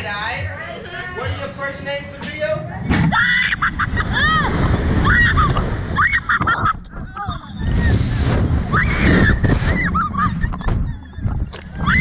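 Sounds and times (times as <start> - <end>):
wind rushing over microphone: 3.5 - 12.0.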